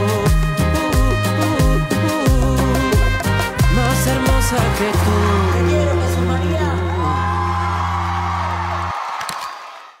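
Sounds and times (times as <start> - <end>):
low bass notes: 0.0 - 8.9.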